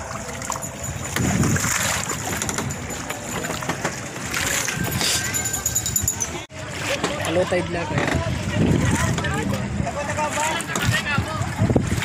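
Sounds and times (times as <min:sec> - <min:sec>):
water around raft: 0:00.0 - 0:12.0
wind rumble on microphone: 0:00.0 - 0:12.0
people talking: 0:04.4 - 0:11.6.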